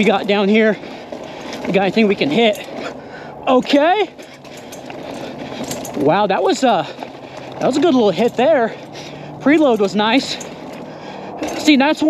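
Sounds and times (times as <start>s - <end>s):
bike tyre and wind rush: 0.0s - 12.0s
faint bike rattles: 0.0s - 12.0s.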